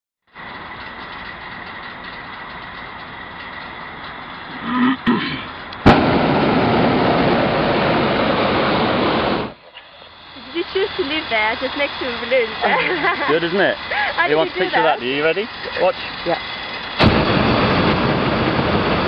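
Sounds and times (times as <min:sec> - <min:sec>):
propane burner roaring: 0:00.3 - 0:19.0.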